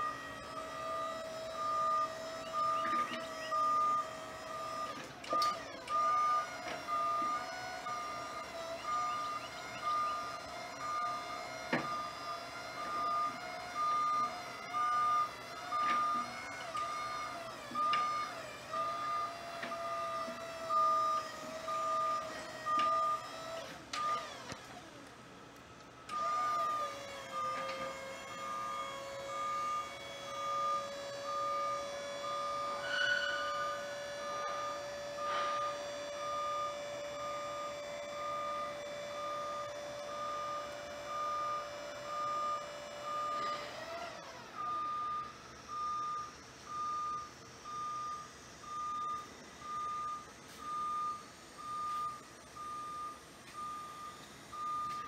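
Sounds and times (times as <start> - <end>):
hydraulic pump motor whining: 0.0 - 55.0
motion alarm beeping: 1.5 - 18.2, 27.3 - 43.6, 44.6 - 55.0.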